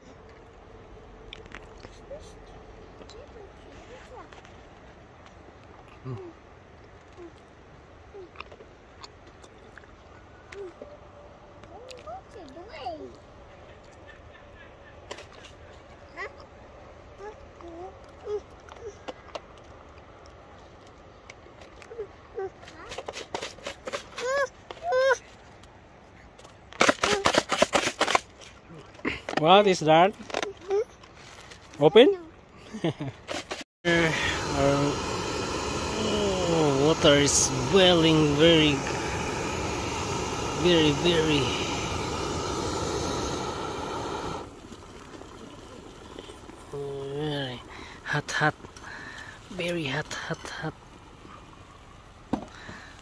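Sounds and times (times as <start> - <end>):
child's high vocal calls: 24.2 - 25.3
gas stove rushing hiss: 33.5 - 49.7.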